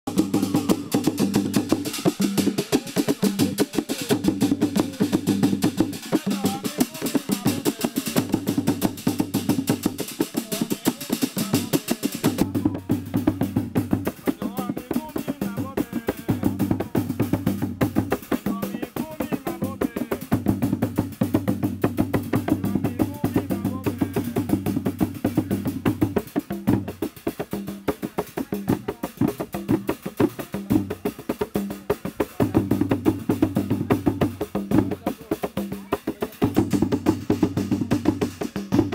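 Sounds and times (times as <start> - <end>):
hand drums beaten fast: 0.1 - 38.9.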